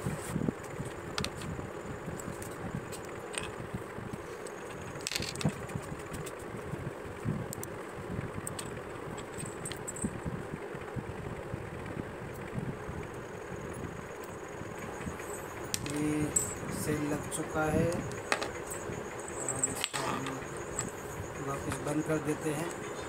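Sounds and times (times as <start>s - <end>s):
steady background noise: 0.0s - 23.0s
small plastic clicks and rattles: 2.3s - 3.6s, 4.6s - 6.4s.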